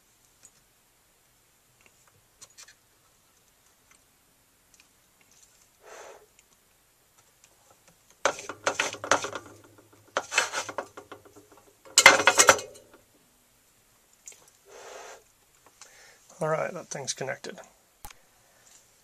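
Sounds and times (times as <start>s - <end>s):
faint rustle: 4.8s - 6.6s
tools clattering: 8.2s - 13.0s.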